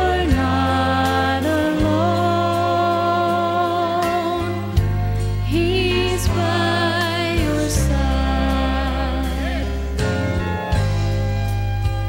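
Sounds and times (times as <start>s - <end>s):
woman singing into a microphone: 0.0s - 4.8s, 5.4s - 9.9s
instrumental accompaniment: 0.0s - 12.0s.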